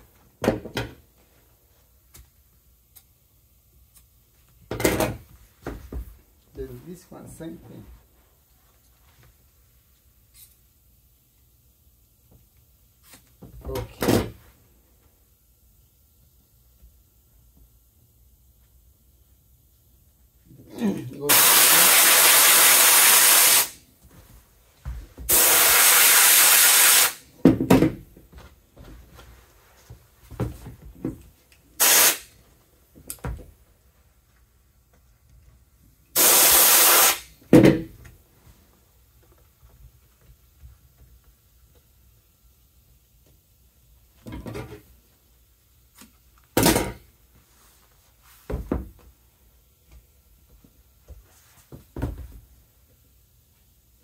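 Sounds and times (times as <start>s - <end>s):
glue spray gun hissing: 21.3s - 23.8s, 25.3s - 27.2s, 31.8s - 32.4s, 36.1s - 37.4s.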